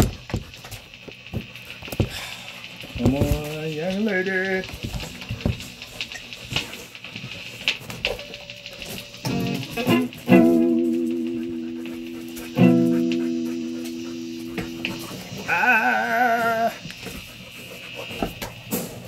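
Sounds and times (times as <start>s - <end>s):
electric guitar strums and chords: 7.9s - 15.7s
wavering vibrato guitar tone: 8.2s - 16.7s.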